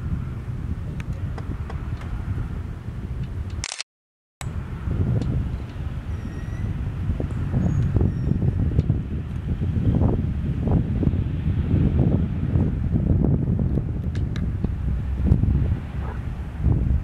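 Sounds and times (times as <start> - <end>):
wind buffeting microphone: 0.0 - 3.7, 4.4 - 17.0.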